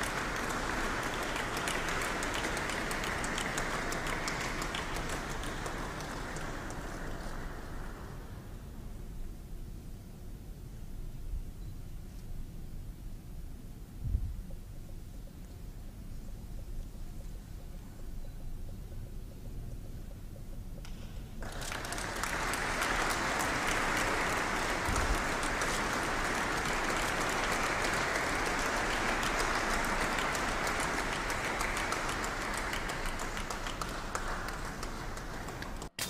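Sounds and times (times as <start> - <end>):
audience applauding: 0.0 - 8.5, 21.4 - 35.9.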